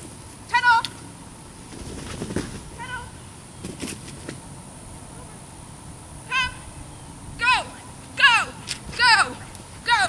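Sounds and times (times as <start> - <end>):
faint low rustle: 0.0 - 7.4.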